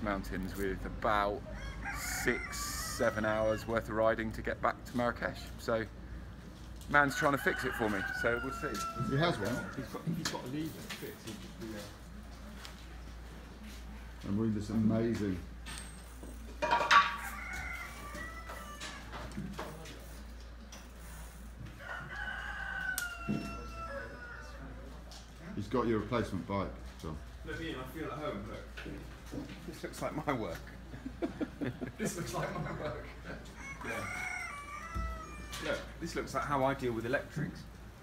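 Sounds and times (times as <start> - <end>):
rooster crowing: 1.5 - 3.8, 7.1 - 10.0, 16.9 - 19.3, 21.8 - 24.8, 33.5 - 36.0.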